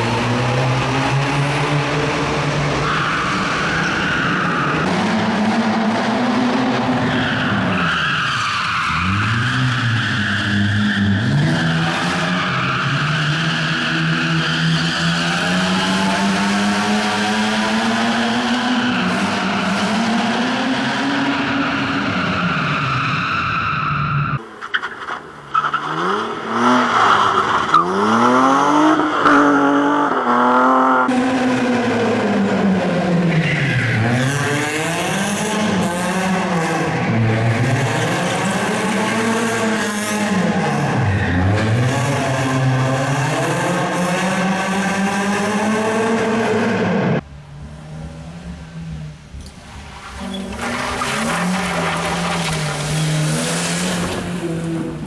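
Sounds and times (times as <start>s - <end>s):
rally car engines revving: 0.0s - 55.0s
tyres skidding on loose surface: 49.8s - 55.0s.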